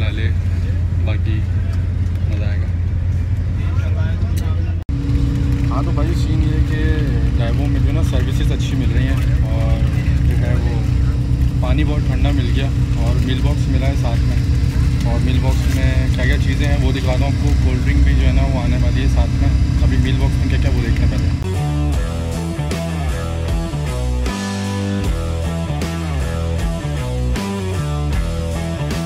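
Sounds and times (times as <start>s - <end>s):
voices talking: 0.0s - 21.5s
bus engine rumble: 0.0s - 24.1s
steady hum: 0.0s - 29.0s.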